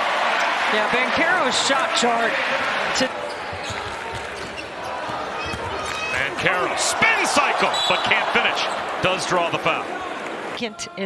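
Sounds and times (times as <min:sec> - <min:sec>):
arena crowd noise: 0:00.0 - 0:11.0
basketball bouncing on hardwood: 0:03.5 - 0:06.0.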